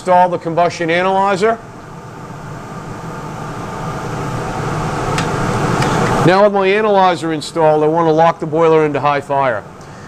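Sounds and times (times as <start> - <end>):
boiler burner rushing: 0.0 - 10.0.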